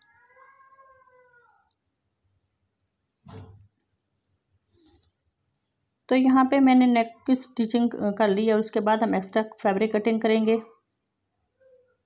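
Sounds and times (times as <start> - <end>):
cat meowing: 0.0 - 1.7.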